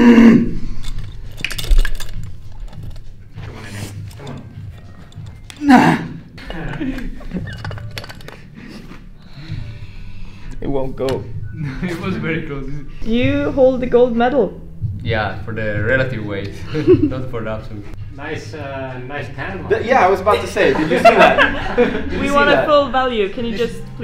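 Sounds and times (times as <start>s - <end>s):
man grunting with strain: 5.6s - 6.2s.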